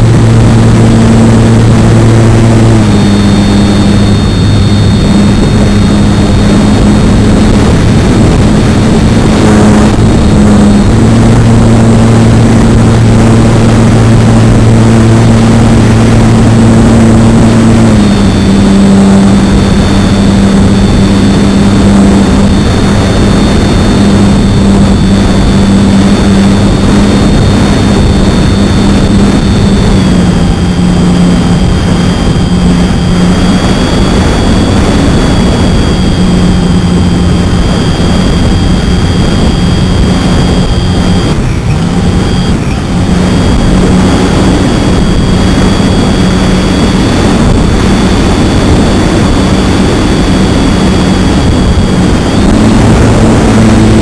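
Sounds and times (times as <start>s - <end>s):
model plane electric motor whine: 0.0s - 54.0s
rushing air noise: 0.0s - 54.0s.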